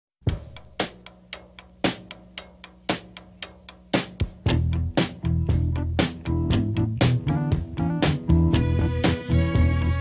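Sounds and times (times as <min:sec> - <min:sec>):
drum kit beat: 0:00.2 - 0:10.0.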